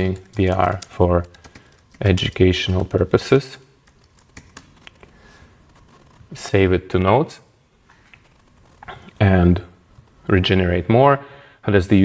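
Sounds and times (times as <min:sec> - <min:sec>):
keyboard keys clicking: 0:00.0 - 0:05.1.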